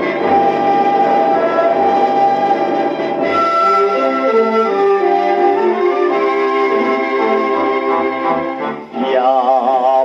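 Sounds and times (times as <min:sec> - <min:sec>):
orchestral music on phonograph: 0:00.0 - 0:10.0
record surface hiss: 0:00.0 - 0:10.0.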